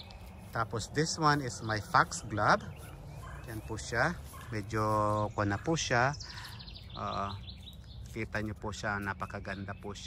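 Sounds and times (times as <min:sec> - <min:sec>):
small songbird trilling: 0:05.2 - 0:10.0.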